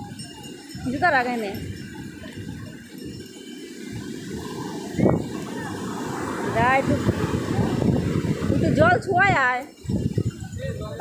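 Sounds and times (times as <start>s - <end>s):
wind on microphone: 0.0s - 11.0s
surf breaking on beach: 2.0s - 10.2s.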